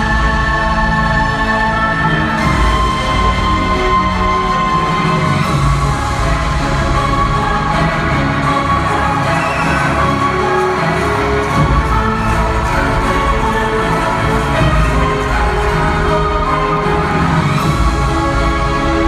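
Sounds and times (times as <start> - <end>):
crowd cheering: 0.0 - 19.0
loud concert music over speakers: 0.0 - 19.0.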